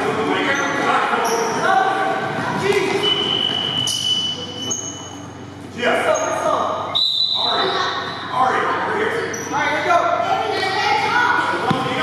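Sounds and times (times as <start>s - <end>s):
voices calling out in gym: 0.0s - 12.0s
basketball bouncing: 11.6s - 12.0s.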